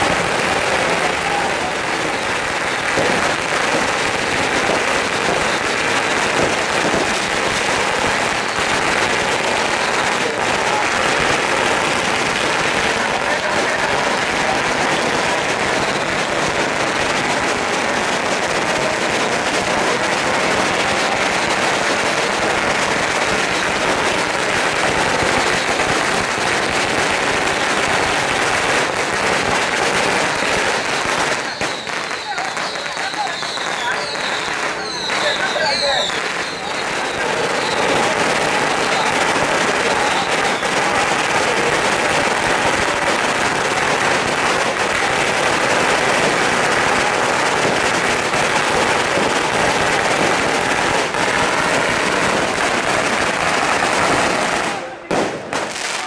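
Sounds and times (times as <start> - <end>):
firecrackers crackling: 0.0 - 56.0.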